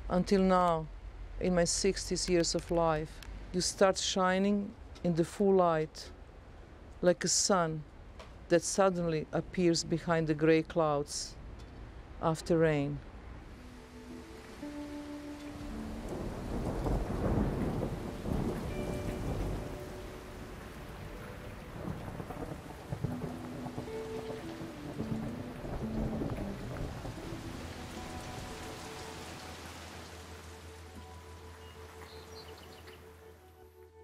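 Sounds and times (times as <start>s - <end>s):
steady rain: 0.0s - 34.0s
soft sustained musical notes: 8.9s - 34.0s
low rumble of thunder: 15.6s - 29.0s.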